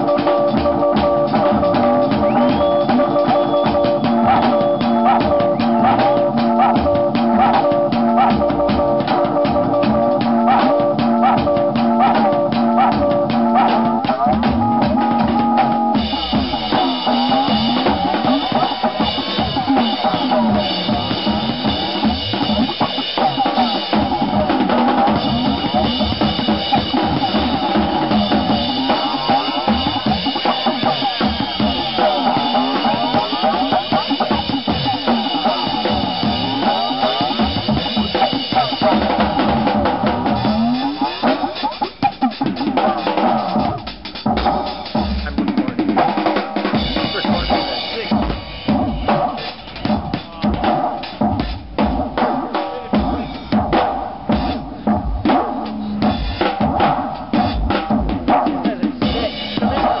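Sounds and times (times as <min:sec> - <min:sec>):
electronic music through speakers: 0:00.0 - 0:45.8, 0:46.8 - 0:51.3
acoustic drum kit playing: 0:00.0 - 1:00.0.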